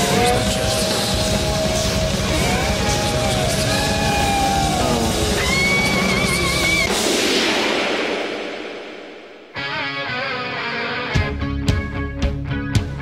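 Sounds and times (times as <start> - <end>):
rock band playing: 0.0 - 7.8, 9.4 - 13.0
bass and drums: 0.0 - 8.4, 11.1 - 13.0.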